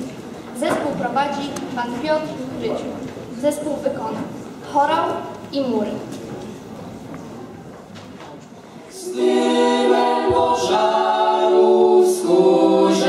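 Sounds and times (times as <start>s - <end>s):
a cappella choir singing chords: 8.9s - 13.0s.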